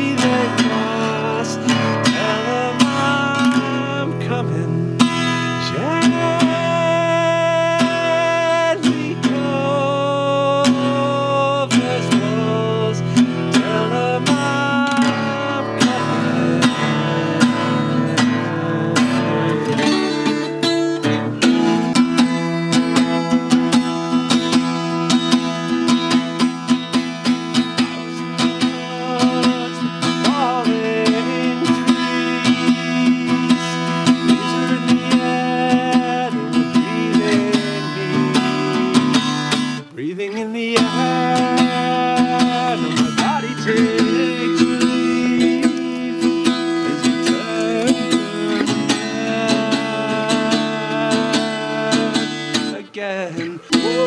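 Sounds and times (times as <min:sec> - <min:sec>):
acoustic guitar strumming: 0:00.0 - 0:54.0
man singing: 0:00.0 - 0:54.0.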